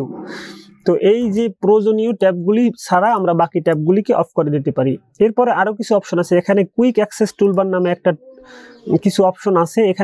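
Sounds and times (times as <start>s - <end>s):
man narrating: 0.0s - 10.0s.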